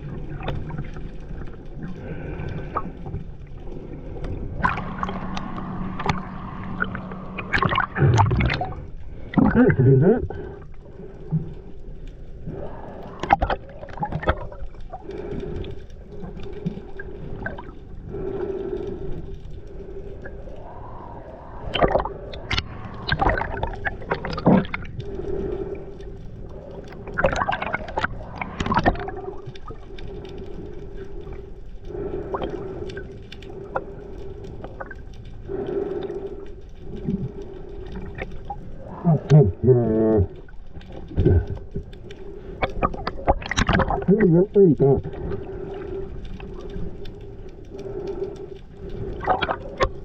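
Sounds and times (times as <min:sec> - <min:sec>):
bubbly bursts of water: 0:00.0 - 0:11.7, 0:12.4 - 0:15.6, 0:16.2 - 0:18.4, 0:20.2 - 0:25.8, 0:26.6 - 0:30.2, 0:36.8 - 0:50.0
low underwater hum: 0:00.0 - 0:50.0.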